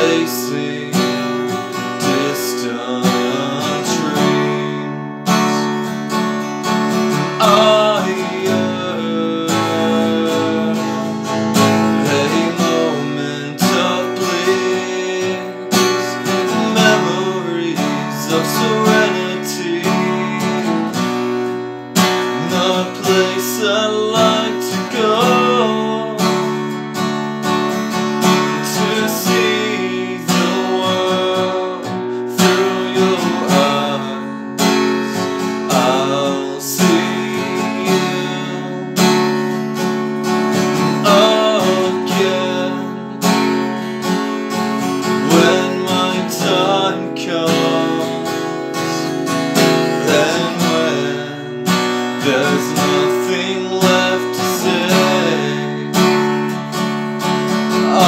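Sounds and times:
acoustic guitar strumming chords: 0.0s - 58.0s.

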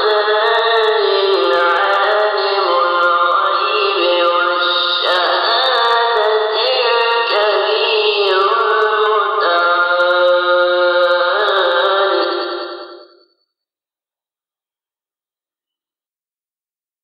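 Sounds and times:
melodic religious recitation: 0.0s - 13.2s.

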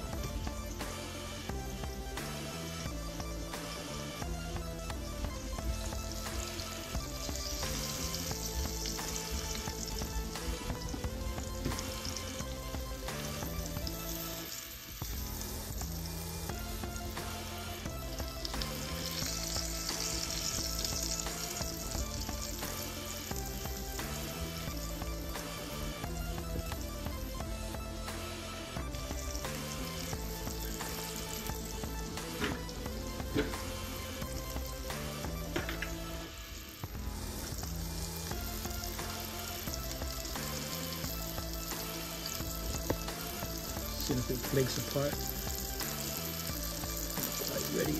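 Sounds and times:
background music with bass line: 0.0s - 47.9s
fish frying in oil: 0.0s - 47.9s.

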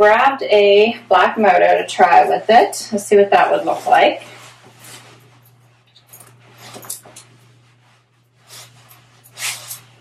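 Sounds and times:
jacket rustling: 1.4s - 10.0s
zipper jingling: 3.5s - 7.9s, 8.5s - 10.0s.

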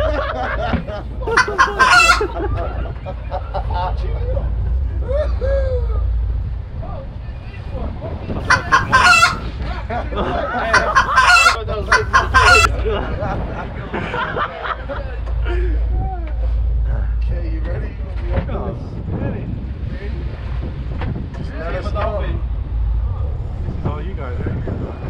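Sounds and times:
steady low rumble: 0.8s - 25.0s.

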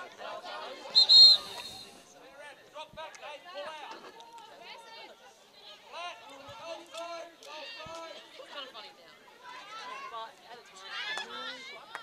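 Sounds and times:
players calling out: 1.0s - 2.0s
whistle blast: 1.0s - 2.0s.

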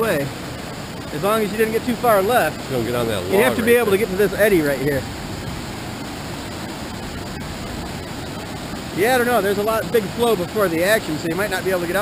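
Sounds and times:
river rapids rushing: 0.0s - 12.0s.

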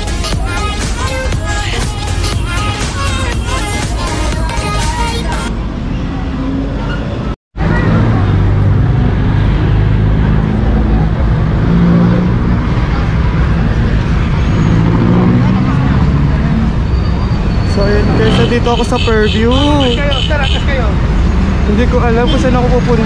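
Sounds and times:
buses running: 0.0s - 23.0s
road traffic rumble: 0.0s - 23.0s.

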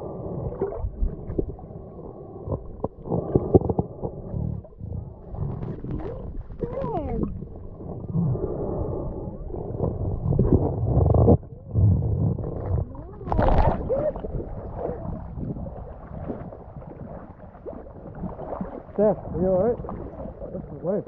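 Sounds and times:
underwater rumbling water movement: 0.0s - 21.0s.

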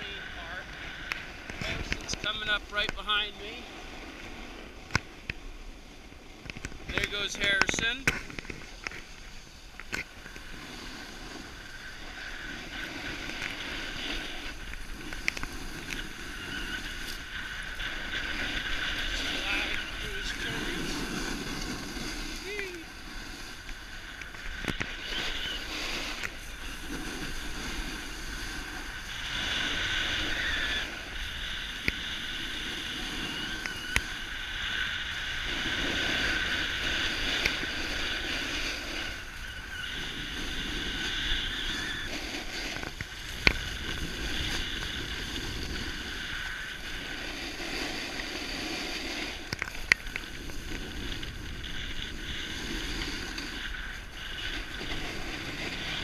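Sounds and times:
skis scraping packed snow: 0.0s - 56.0s
wind rushing over microphone: 0.0s - 56.0s.

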